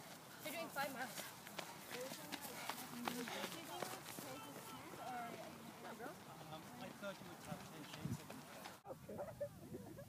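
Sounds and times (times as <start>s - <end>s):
footsteps on dirt trail: 0.0s - 8.8s.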